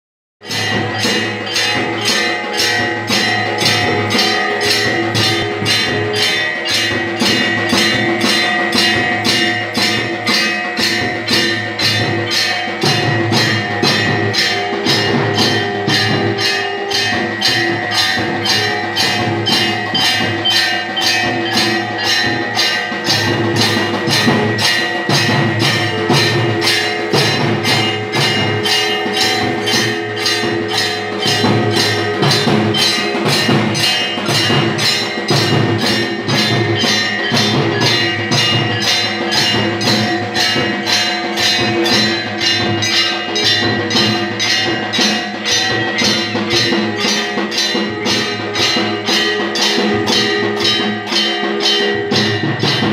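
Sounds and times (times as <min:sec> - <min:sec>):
bells ringing: 0:00.4 - 0:52.9
drums and percussion beat: 0:00.4 - 0:52.9.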